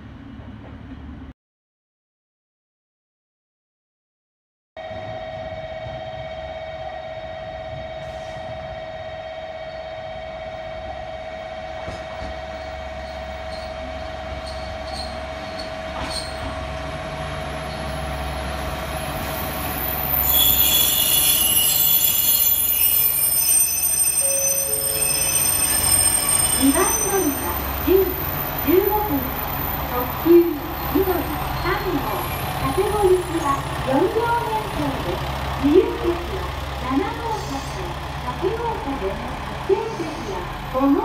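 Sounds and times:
train engine and wheels rumbling: 0.0 - 1.3, 4.8 - 41.0
wheels squealing on rails: 11.8 - 41.0
steady high tone: 17.5 - 41.0.

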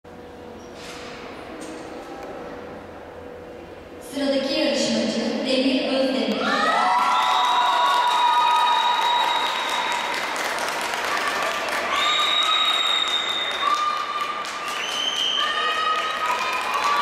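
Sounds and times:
crowd applauding and cheering: 6.5 - 17.0.

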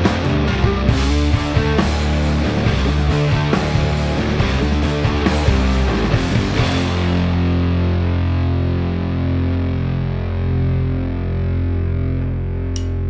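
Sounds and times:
distorted electric guitar chord ringing: 0.0 - 13.0
cymbal tick: 12.8 - 13.0.

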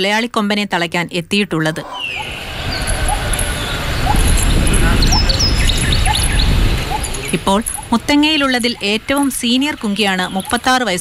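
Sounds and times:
birds chirping: 1.6 - 11.0
loud low rumbling noise: 1.7 - 8.5.

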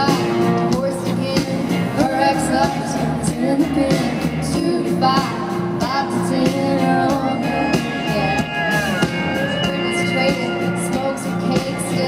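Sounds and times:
bass: 0.0 - 12.0
drums: 0.0 - 12.0
electric guitar: 0.0 - 12.0
person singing: 0.0 - 12.0.

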